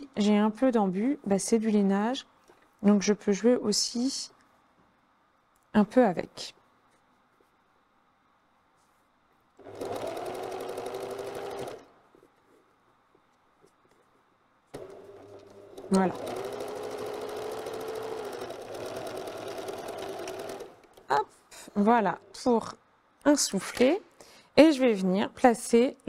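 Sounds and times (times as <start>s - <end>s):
sewing machine stitching: 9.6s - 11.9s, 14.7s - 21.1s.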